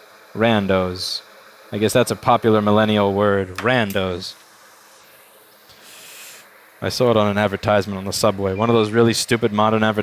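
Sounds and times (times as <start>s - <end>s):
man speaking: 0.4s - 1.2s, 1.8s - 4.4s, 6.8s - 10.0s
soft breath: 5.7s - 6.5s.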